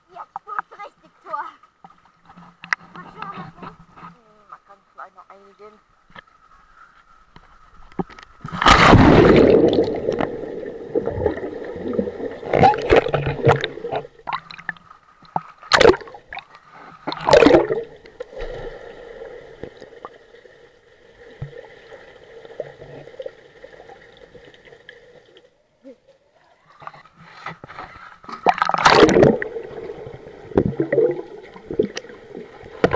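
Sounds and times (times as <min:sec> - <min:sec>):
faint underwater hum: 0:00.0 - 0:32.9
underwater splashing and bubbling: 0:07.9 - 0:25.6, 0:28.2 - 0:32.9.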